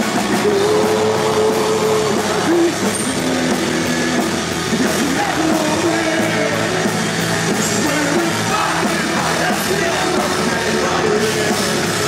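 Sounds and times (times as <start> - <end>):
bass guitar: 0.0 - 12.0
distorted electric guitar: 0.0 - 12.0
drum kit: 0.0 - 12.0.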